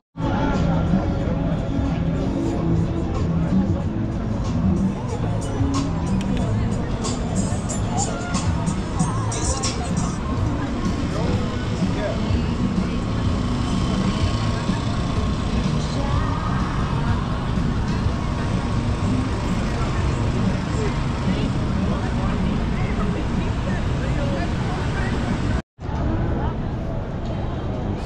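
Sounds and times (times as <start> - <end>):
people chattering: 0.2 - 28.0
car traffic passing: 1.8 - 25.6.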